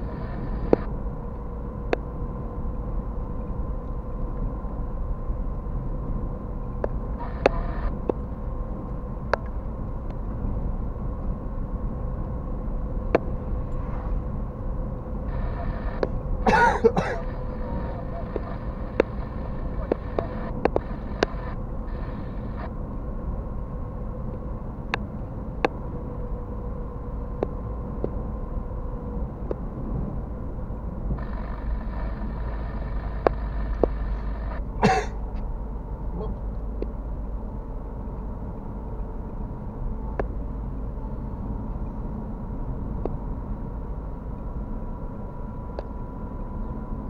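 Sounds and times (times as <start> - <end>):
car road and engine noise: 0.0 - 47.0
faint steady whine: 0.0 - 47.0
steady high-pitched tone: 12.6 - 23.8.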